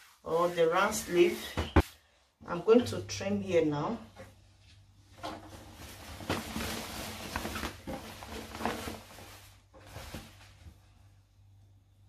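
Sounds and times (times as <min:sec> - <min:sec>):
cotton fabric rustling: 0:00.0 - 0:02.8, 0:04.3 - 0:11.3.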